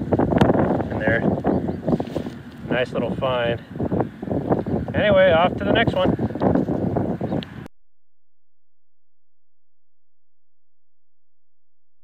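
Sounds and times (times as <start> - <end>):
wind on microphone: 0.0 - 7.7.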